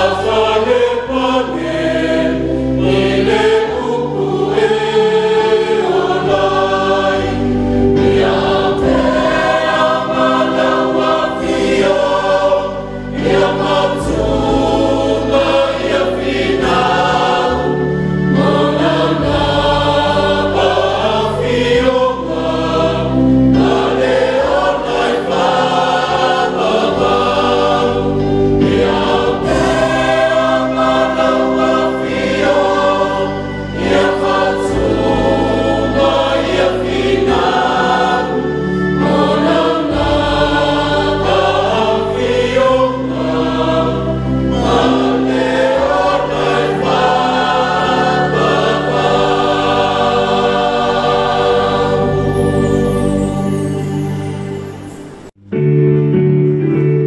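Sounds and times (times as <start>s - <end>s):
choir singing a hymn: 0.0s - 55.3s.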